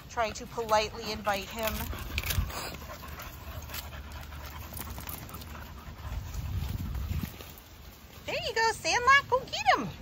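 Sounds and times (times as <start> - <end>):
dogs panting: 0.0 - 9.2.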